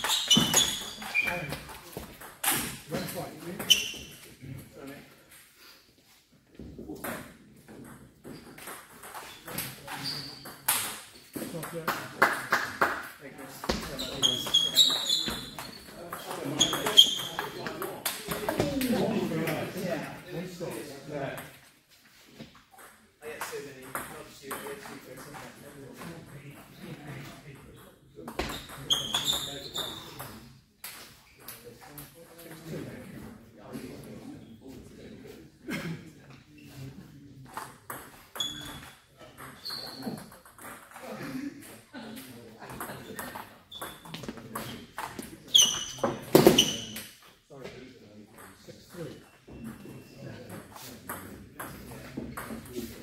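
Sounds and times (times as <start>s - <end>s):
sneaker squeaks on floor: 0.0s - 2.8s, 3.6s - 4.3s, 8.2s - 11.0s, 13.6s - 17.8s, 28.4s - 30.3s, 37.9s - 40.5s, 43.1s - 44.9s, 45.5s - 47.2s, 49.3s - 50.2s.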